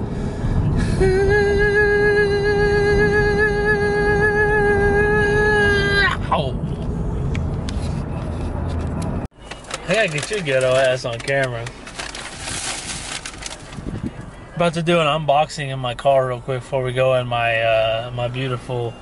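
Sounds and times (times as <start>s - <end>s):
car cabin road rumble: 0.0s - 19.0s
person singing a long high note: 0.7s - 6.3s.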